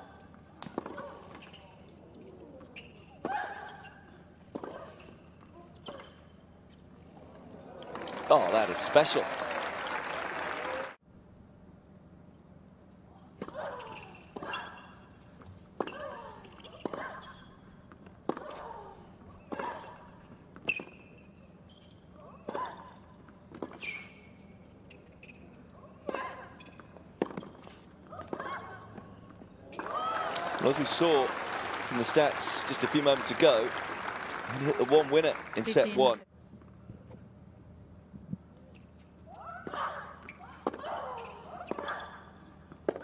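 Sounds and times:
shoe squeaks: 0:00.9 - 0:06.9, 0:13.6 - 0:23.0, 0:23.6 - 0:29.9, 0:38.6 - 0:42.3.

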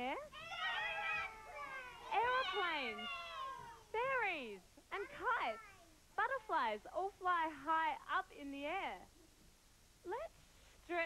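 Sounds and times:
children calling out: 0:00.3 - 0:03.9.

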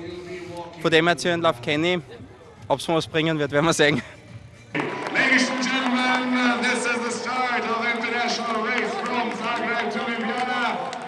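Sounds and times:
crowd shouting and cheering: 0:04.7 - 0:11.0.

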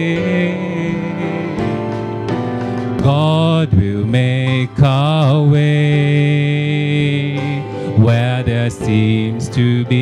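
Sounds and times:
man singing into a microphone: 0:00.0 - 0:10.0
sustained instrumental chords: 0:00.0 - 0:10.0.

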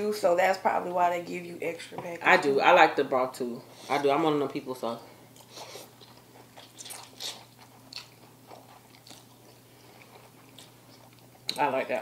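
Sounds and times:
chewing and slurping noodles: 0:05.4 - 0:11.6.

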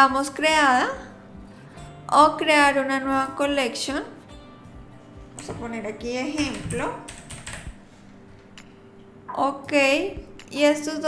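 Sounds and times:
keyboard typing: 0:06.4 - 0:07.8.

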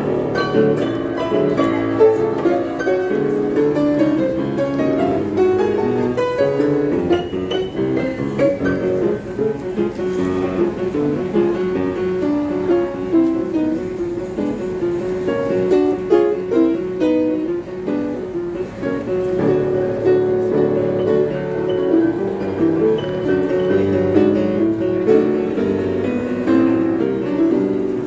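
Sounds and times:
upright piano fast classical piece: 0:00.0 - 0:28.0.

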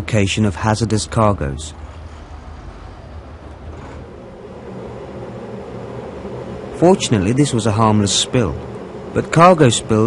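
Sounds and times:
machinery rumble and hum: 0:00.0 - 0:10.0.

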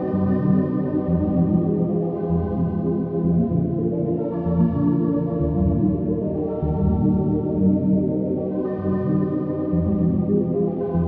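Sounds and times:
ambient organ-like keyboard chords: 0:00.0 - 0:11.0.

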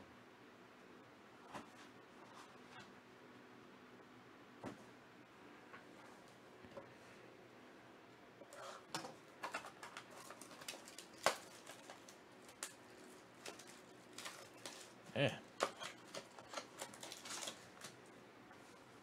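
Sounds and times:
plastic wrap tearing and crinkling: 0:09.4 - 0:15.0, 0:15.6 - 0:18.0.

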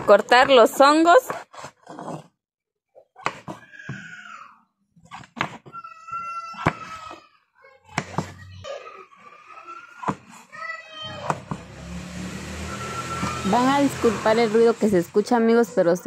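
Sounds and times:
voices: 0:12.6 - 0:16.0.

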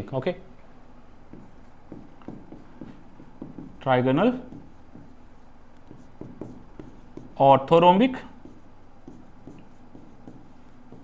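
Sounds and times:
writing strokes on a board: 0:01.3 - 0:07.5, 0:08.3 - 0:11.0
person speaking: 0:03.7 - 0:04.8, 0:06.4 - 0:08.6.

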